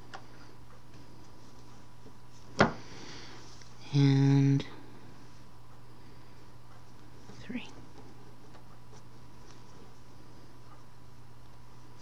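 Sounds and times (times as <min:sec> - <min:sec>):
low room hum and hiss: 0:00.0 - 0:12.0.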